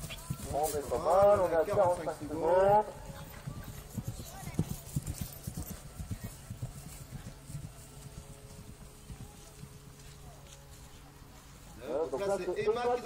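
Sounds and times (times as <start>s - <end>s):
hoofbeats on grass: 0.0s - 13.0s.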